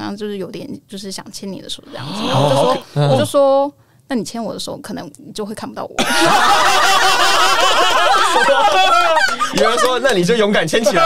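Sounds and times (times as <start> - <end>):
people laughing loudly: 6.0 - 11.0.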